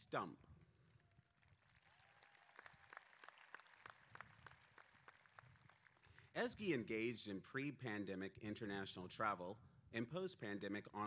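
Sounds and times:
crowd clapping sparsely: 1.0s - 6.3s.

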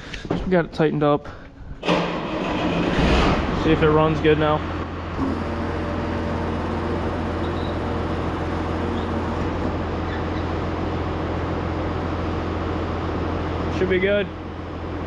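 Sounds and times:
tractor engine running: 1.6s - 15.0s.

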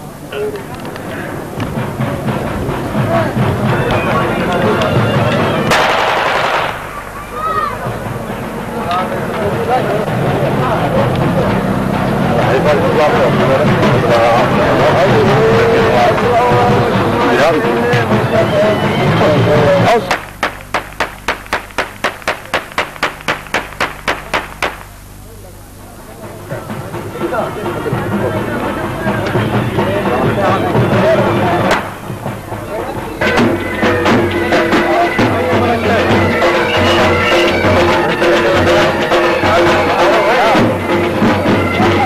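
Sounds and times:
voices: 0.0s - 42.0s
sharp bangs: 5.6s - 7.4s, 20.1s - 25.2s, 31.7s - 32.2s
hands clapping rhythmically: 20.1s - 24.9s.

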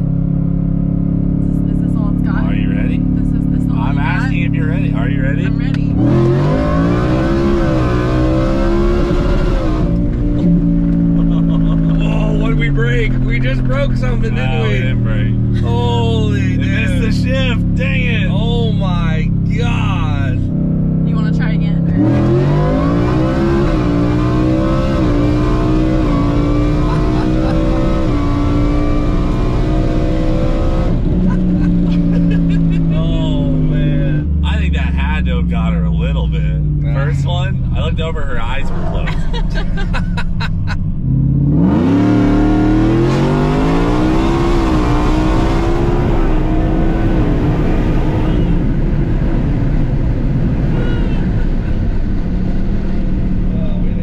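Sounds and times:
truck engine at full throttle: 0.0s - 54.0s.

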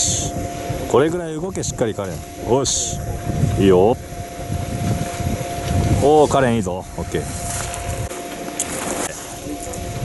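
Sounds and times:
thin steady tone: 0.0s - 10.0s
wind buffeting microphone: 0.0s - 10.0s.

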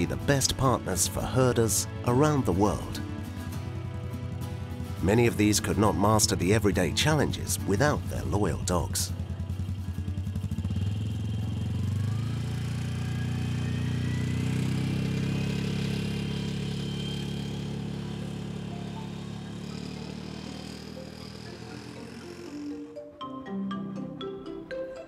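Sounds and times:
quad bike engine pulling away: 0.0s - 23.0s.

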